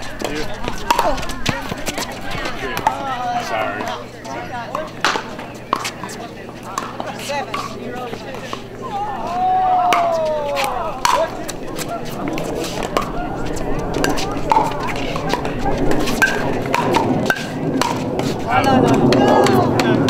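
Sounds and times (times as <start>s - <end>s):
paddles striking pickleball: 0.0s - 8.6s, 9.8s - 13.2s, 13.9s - 20.0s
background voices: 0.0s - 20.0s.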